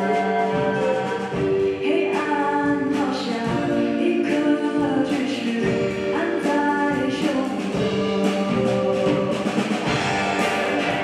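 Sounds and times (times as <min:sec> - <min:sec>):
live band playing: 0:00.0 - 0:11.0.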